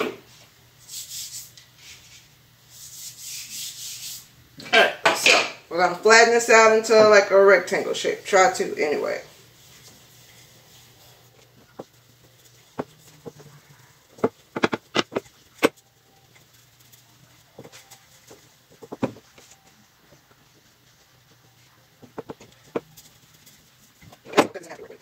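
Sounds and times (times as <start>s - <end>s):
rolling pin knocks and taps: 14.2s - 15.8s.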